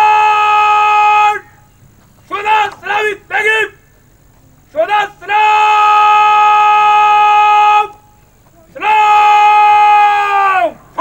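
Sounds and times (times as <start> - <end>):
bugle long steady note: 0.0 - 11.0.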